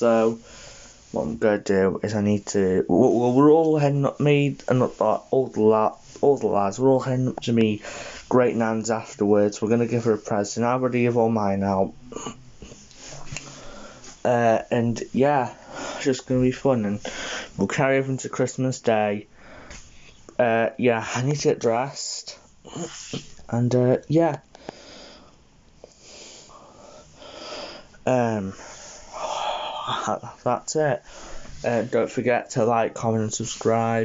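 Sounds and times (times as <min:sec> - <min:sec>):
person breathing close to microphone: 0:00.4 - 0:01.2, 0:07.8 - 0:08.3, 0:12.6 - 0:14.2, 0:15.5 - 0:16.1, 0:17.0 - 0:17.6, 0:19.3 - 0:20.3, 0:24.5 - 0:30.1, 0:31.0 - 0:31.9.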